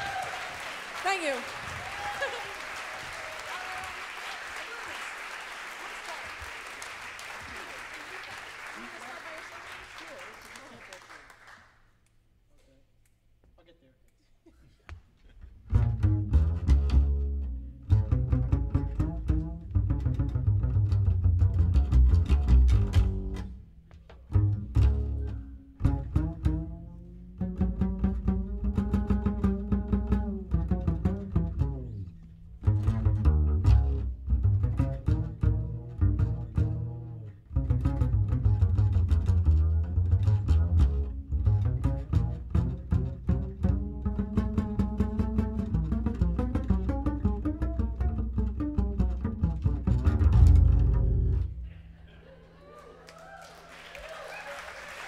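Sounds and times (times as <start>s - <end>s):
double bass plucked: 15.6s - 52.0s.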